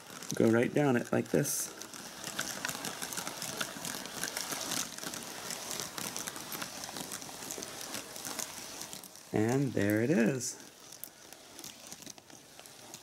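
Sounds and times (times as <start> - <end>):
marbles clicking: 0.0 - 13.0
marbles rolling on paper: 0.0 - 13.0.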